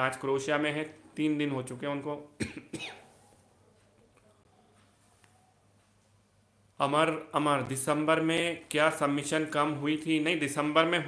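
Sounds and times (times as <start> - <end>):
man coughing: 2.4 - 3.1.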